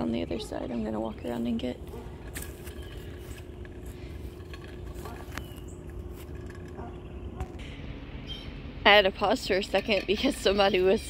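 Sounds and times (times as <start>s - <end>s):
truck engine humming: 0.0s - 11.0s.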